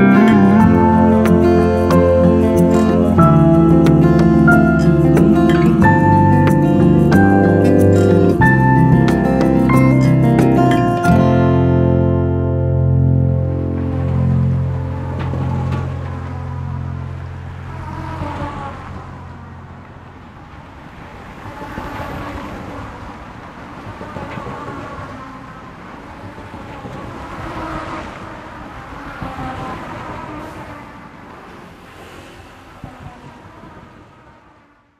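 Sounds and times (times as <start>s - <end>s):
low song note ringing out: 0.0s - 17.7s
cars passing: 0.0s - 34.9s.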